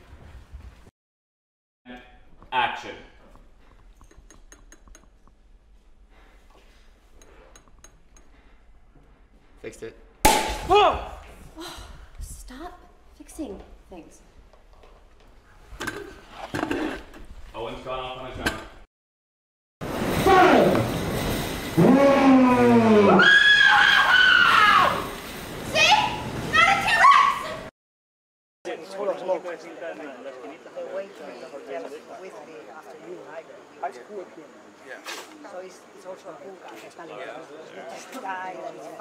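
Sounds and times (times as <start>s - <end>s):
person yelling: 10.6s - 11.2s
high-pitched scream: 21.8s - 25.2s.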